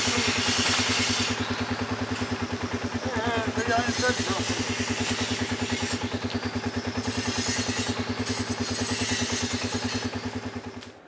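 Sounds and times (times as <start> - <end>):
engine puttering: 0.0 - 11.0.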